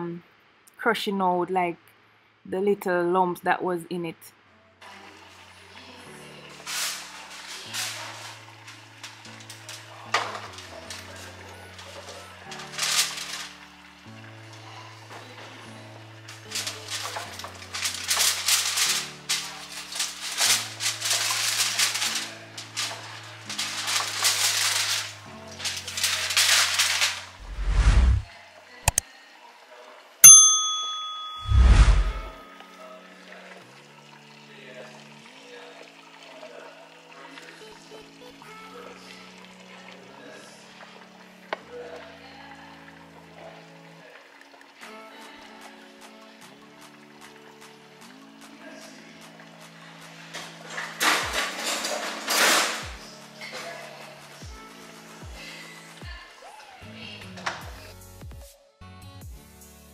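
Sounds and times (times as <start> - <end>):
background music: 2.5 - 29.0, 30.2 - 59.9
aluminium foil crinkling: 6.5 - 13.9, 16.2 - 27.5
metal pan clinking: 30.2 - 31.6.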